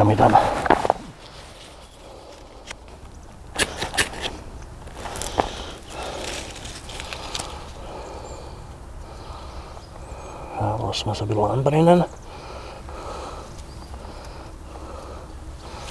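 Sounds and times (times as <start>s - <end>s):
man talking: 0.0s - 0.7s, 10.5s - 12.2s
soft rustling of tinder: 0.2s - 10.4s, 12.1s - 15.9s
sticks clicking and scraping: 3.5s - 7.8s.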